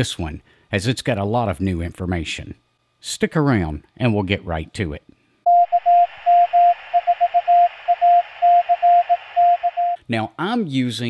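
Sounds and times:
morse code tone: 0:05.5 - 0:10.0
radio static hiss: 0:06.1 - 0:09.7.

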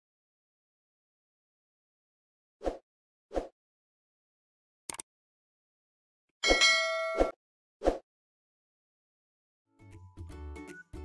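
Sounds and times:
bright ringing ding: 0:06.4 - 0:07.3.

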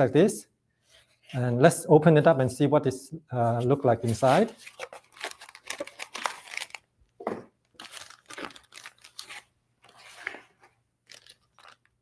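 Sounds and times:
cardboard crinkling and tearing: 0:04.1 - 0:06.9, 0:07.8 - 0:12.0.

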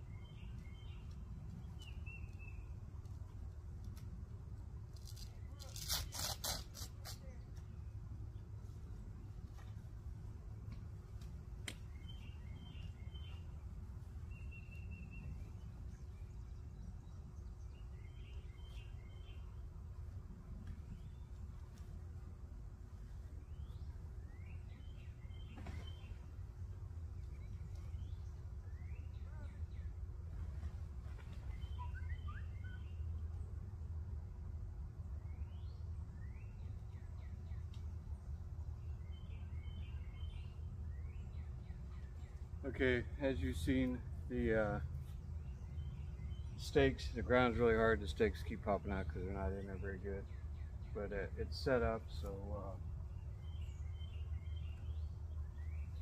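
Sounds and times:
birds chirping: 0:00.0 - 0:03.4, 0:05.0 - 0:33.7, 0:35.0 - 0:56.0.

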